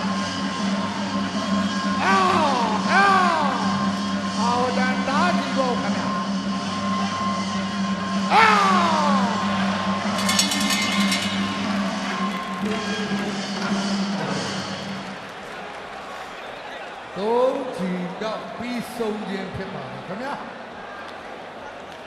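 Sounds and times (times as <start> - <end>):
music with steady drone: 0.0 - 15.4
boxing bell ringing strikes: 10.2 - 12.7.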